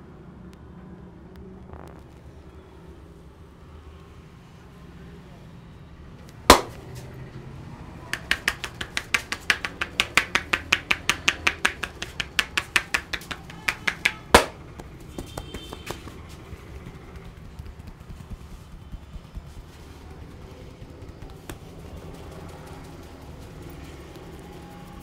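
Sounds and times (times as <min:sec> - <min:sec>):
palms chopping on head: 0:06.3 - 0:07.1, 0:08.1 - 0:25.0
loud hand smack: 0:06.5 - 0:06.8, 0:08.2 - 0:16.3.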